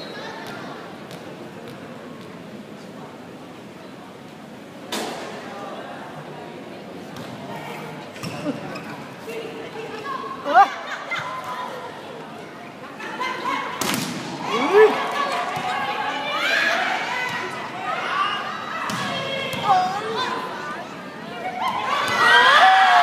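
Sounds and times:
players and spectators shouting: 14.4s - 20.7s, 21.3s - 23.0s.

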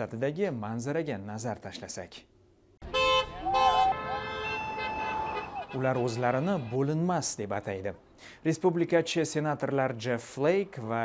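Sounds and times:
car horns honking: 2.8s - 7.0s
people shouting: 3.2s - 6.8s.

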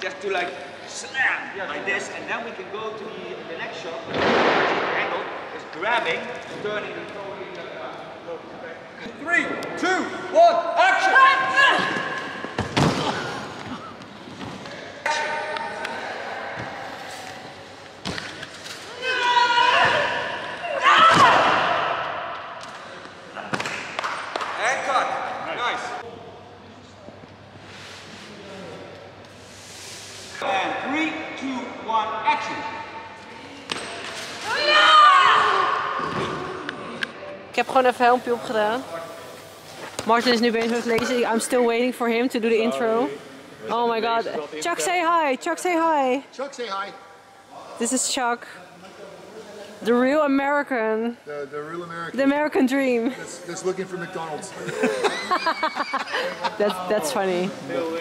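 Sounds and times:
large hall room noise: 0.0s - 58.0s.

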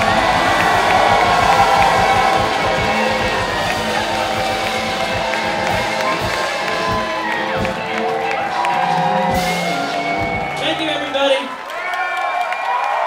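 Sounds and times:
live rock band: 0.0s - 11.2s
electric guitars ringing: 0.0s - 11.5s
crowd cheering and whooping: 0.0s - 13.0s.

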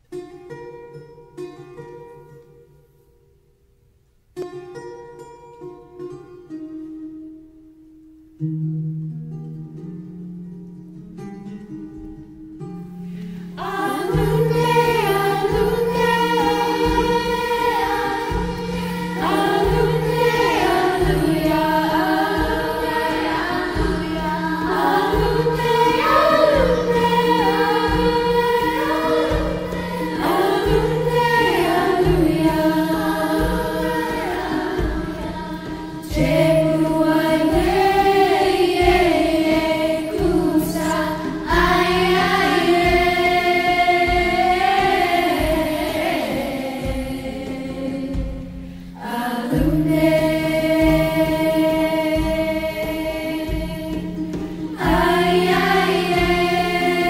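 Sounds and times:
soft guitar and percussion: 8.4s - 57.0s
girls' chorus singing lullaby: 13.2s - 57.0s.

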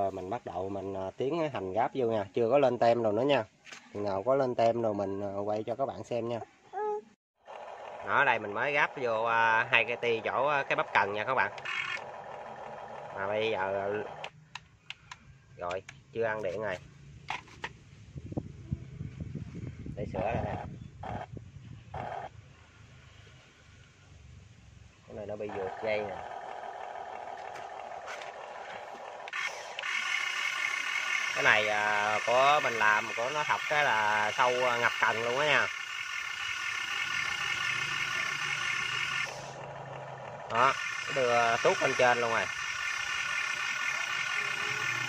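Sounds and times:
electric motor whine: 7.5s - 14.4s, 25.5s - 45.0s.

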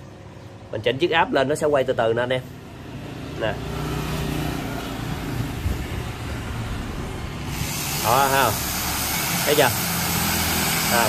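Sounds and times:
drill motor spinning: 7.4s - 11.0s.

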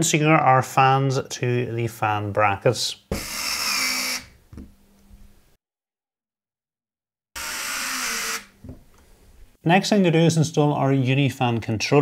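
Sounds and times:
electric screwdriver running: 3.2s - 4.3s, 7.4s - 8.6s.

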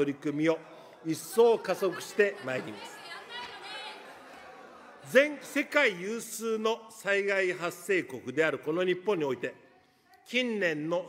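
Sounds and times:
person speaking: 0.0s - 4.1s.

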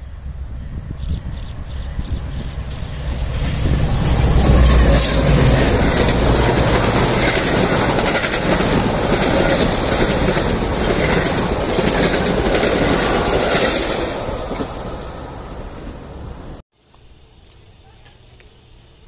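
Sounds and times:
low train rumble: 0.0s - 16.6s
train wheels clicking over rail joints: 1.3s - 14.9s.

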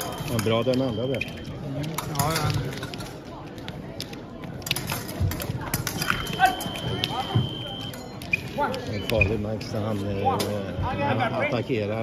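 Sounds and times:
clicks of fencing blades: 0.0s - 7.2s
voices in a sports hall: 0.0s - 12.0s.

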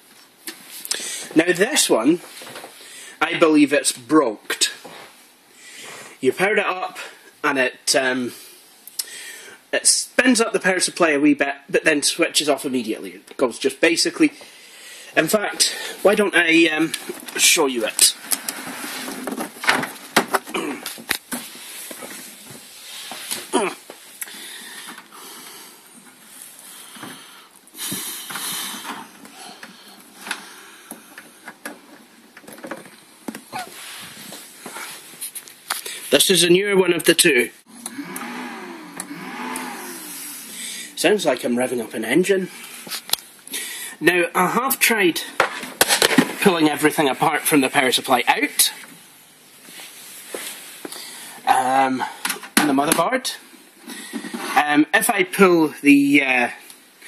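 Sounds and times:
man speaking: 1.3s - 2.2s, 3.2s - 4.9s, 6.2s - 8.4s, 15.2s - 18.2s, 36.1s - 37.6s, 40.6s - 42.6s, 44.0s - 45.4s, 46.4s - 48.8s, 51.4s - 53.4s, 54.6s - 56.6s.

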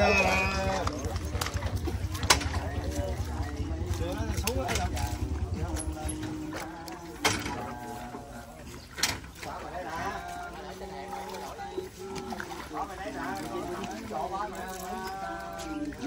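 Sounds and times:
low rumble: 0.0s - 11.6s
people talking indistinctly: 0.0s - 16.0s.

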